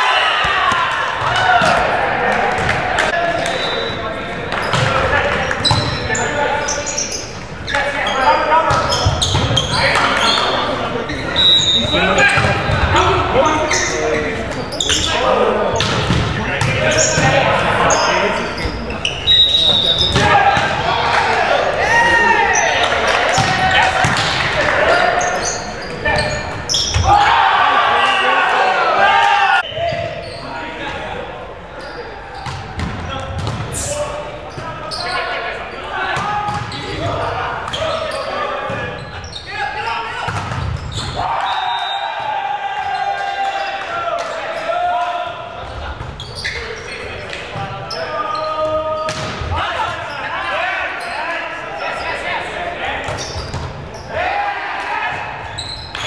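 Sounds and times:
players shouting: 0.0 - 56.0.

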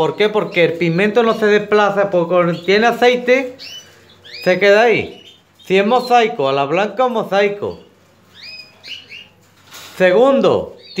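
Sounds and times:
canaries chirping: 0.0 - 11.0.

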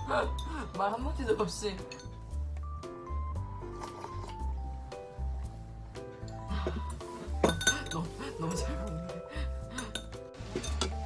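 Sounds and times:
light background music: 0.0 - 11.0
metal utensils clinking on bowls: 1.4 - 2.4, 3.7 - 4.5, 6.2 - 11.0.

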